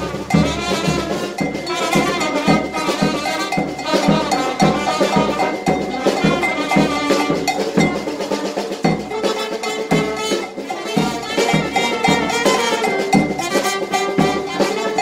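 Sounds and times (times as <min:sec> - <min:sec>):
brass band playing: 0:00.0 - 0:15.0
snare and bass drum beat: 0:00.0 - 0:15.0.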